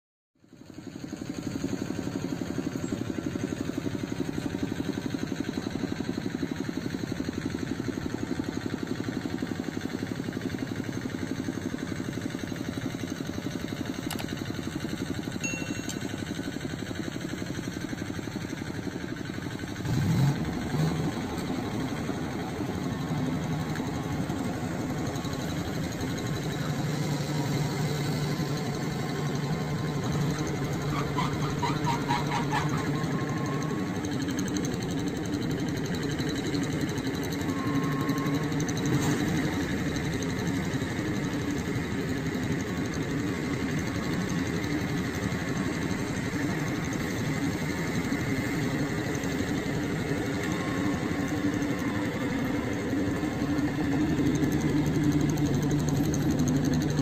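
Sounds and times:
harvester engine chugging: 0.4 - 57.0.

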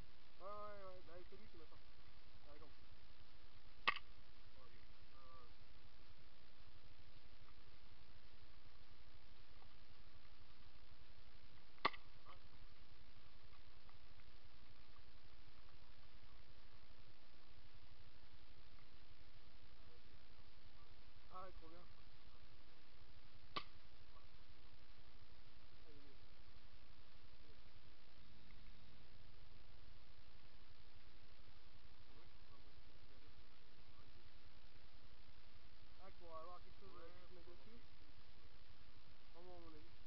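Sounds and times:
faint hiss: 0.0 - 40.0.

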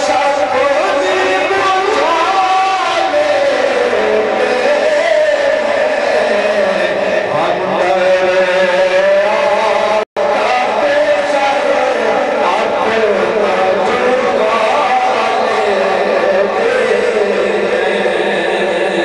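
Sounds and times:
man chanting: 0.0 - 19.0.

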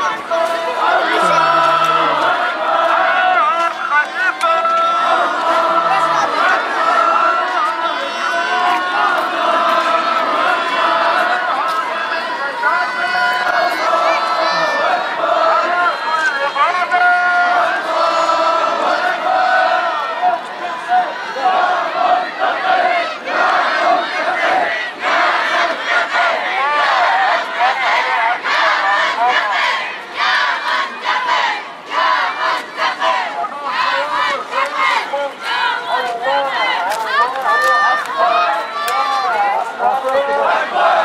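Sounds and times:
crowd of protesters shouting: 0.0 - 41.0.

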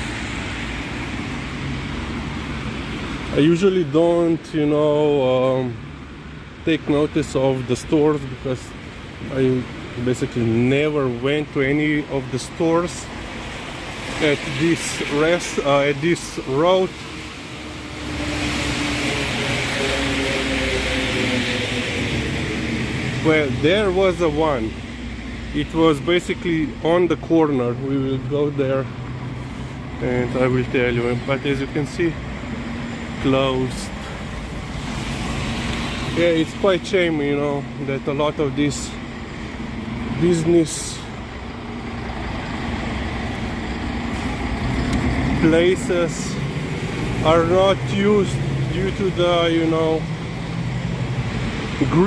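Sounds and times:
tyres hissing on wet road: 0.0 - 26.7, 27.5 - 52.0
vehicle engine hum: 0.0 - 52.0.

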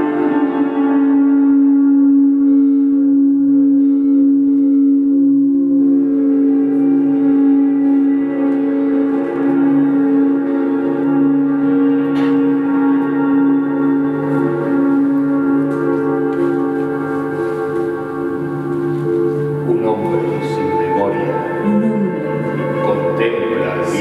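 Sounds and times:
pulsing low tone: 0.0 - 24.0
sustained electronic drone: 0.0 - 24.0.

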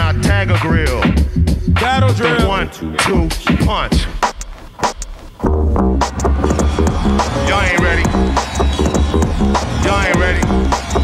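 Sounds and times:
heavy bass line: 0.0 - 3.8, 5.4 - 11.0
hip hop beat: 0.0 - 11.0.

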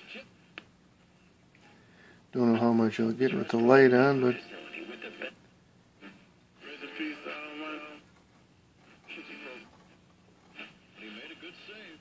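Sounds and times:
voice on a radio: 11.0 - 12.0.

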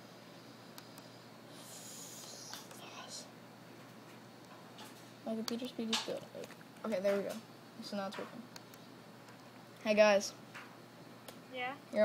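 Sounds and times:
person whispering: 1.6 - 3.3.

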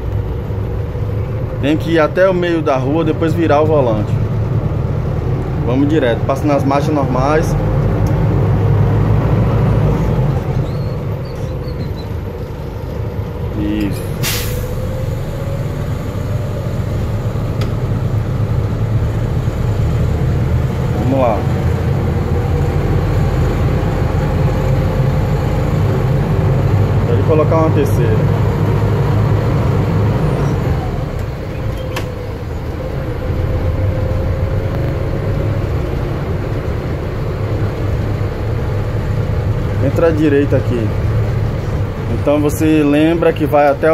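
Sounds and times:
bus engine drone with whine: 0.0 - 43.9.

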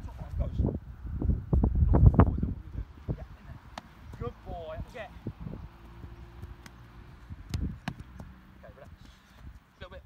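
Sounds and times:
wind on microphone: 0.0 - 8.2.

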